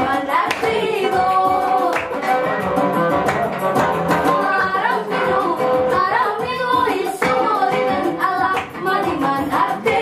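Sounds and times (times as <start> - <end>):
women singing: 0.0 - 2.4, 4.1 - 10.0
hand claps: 0.4 - 4.4, 6.9 - 9.2
oud playing: 1.0 - 5.9.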